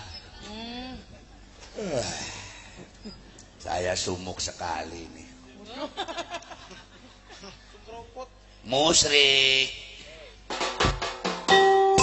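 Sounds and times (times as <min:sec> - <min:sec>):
drum strikes: 0:10.5 - 0:12.0
ringing held notes: 0:11.5 - 0:12.0.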